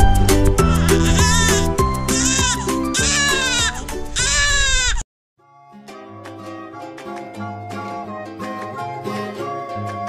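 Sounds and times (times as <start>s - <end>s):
background music: 0.0s - 4.5s, 5.4s - 10.0s
newborn baby crying: 0.6s - 5.0s
soft guitar music: 5.4s - 10.0s.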